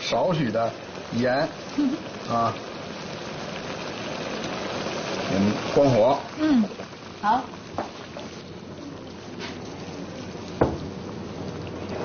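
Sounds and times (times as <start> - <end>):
stew bubbling in a wok: 0.0 - 12.0.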